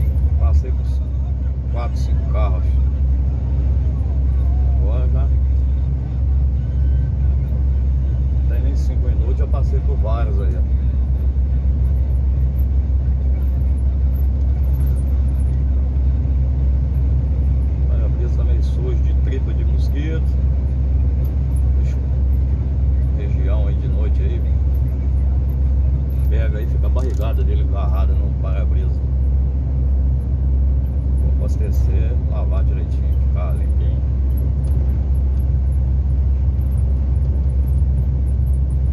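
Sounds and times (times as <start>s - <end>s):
truck engine and road drone: 0.0s - 38.9s.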